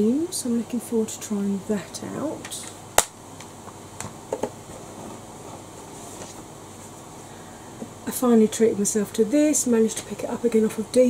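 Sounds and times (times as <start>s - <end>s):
electric fan running: 0.0s - 11.0s.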